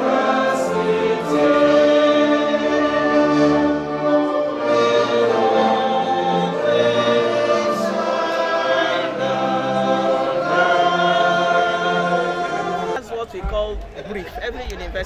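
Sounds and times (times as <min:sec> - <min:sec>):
choir singing held notes: 0:00.0 - 0:13.0.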